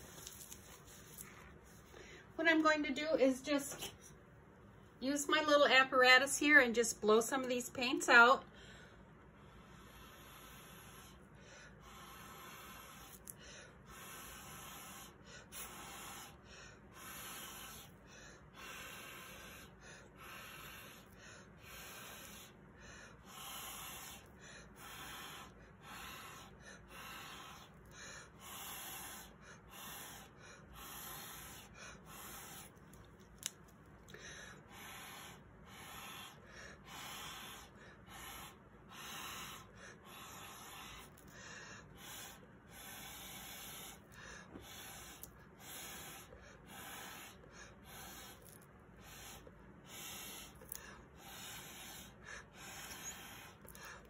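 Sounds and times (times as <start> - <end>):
puffs of breath through tube: 8.6 - 32.8, 34.1 - 54.0.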